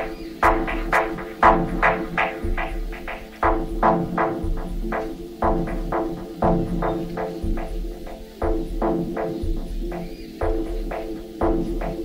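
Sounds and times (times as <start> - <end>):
short repeated synth stabs: 0.0 - 12.0.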